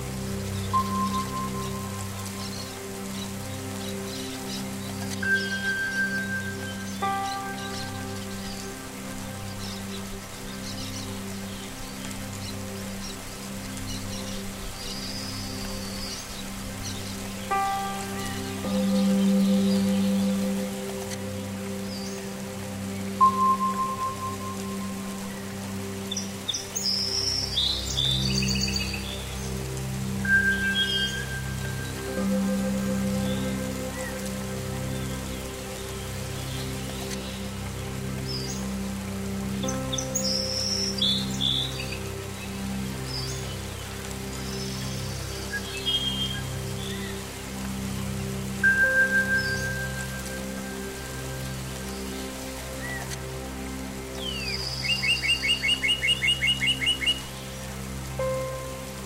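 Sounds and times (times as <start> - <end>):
ambient meditation music: 0.0 - 59.0
birdsong: 0.0 - 59.0
soft rain: 0.0 - 59.0.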